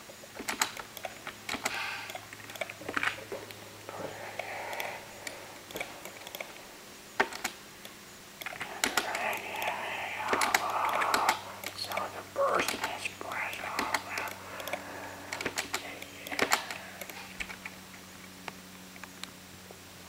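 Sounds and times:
low steady hum: 0.0 - 20.0
static clicks and crackle: 0.0 - 20.0
muffled radio voices: 3.2 - 6.8, 8.5 - 17.6.

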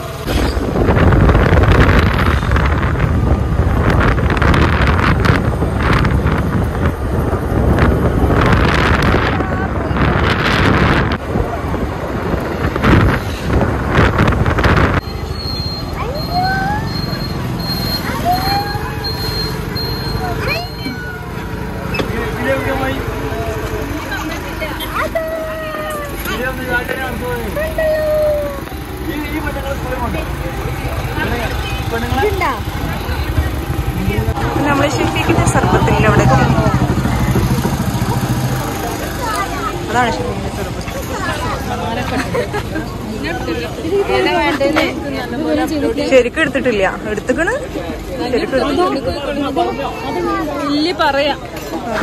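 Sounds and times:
auto-rickshaw engine throbbing: 0.0 - 52.0
wind buffeting microphone: 0.2 - 15.0, 32.2 - 39.2
people talking: 9.0 - 10.6, 15.8 - 52.0
scooter running noise: 15.1 - 45.9.

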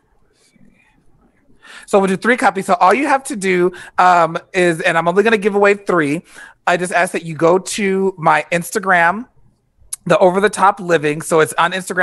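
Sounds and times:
man speaking: 1.9 - 9.3.

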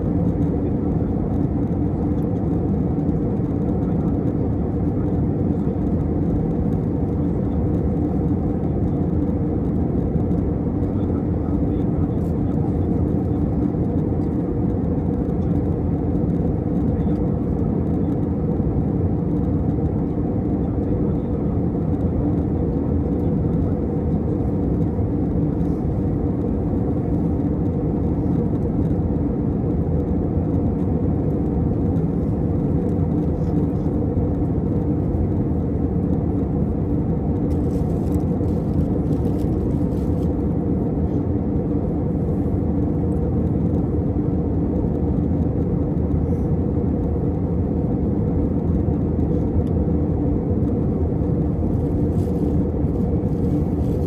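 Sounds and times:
jet airliner cabin noise: 0.0 - 54.0.

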